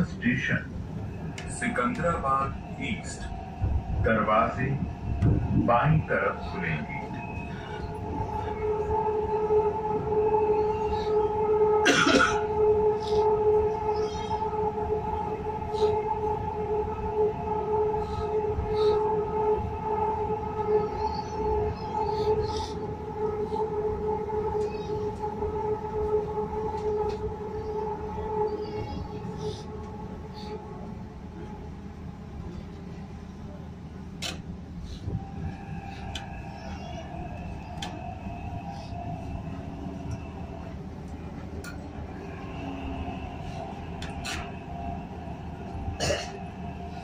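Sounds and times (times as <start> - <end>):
low rumble of train wheels: 0.0 - 47.0
train electric whine: 0.0 - 47.0.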